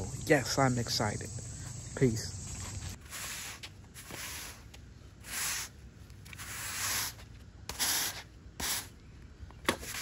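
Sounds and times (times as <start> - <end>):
push broom scraping concrete: 2.6 - 8.9.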